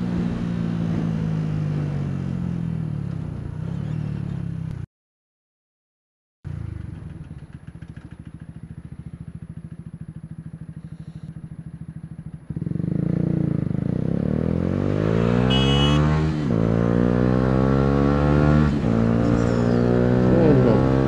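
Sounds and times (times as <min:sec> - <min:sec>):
motorcycle engine idling and revving: 0:00.0 - 0:04.9, 0:06.4 - 0:21.0.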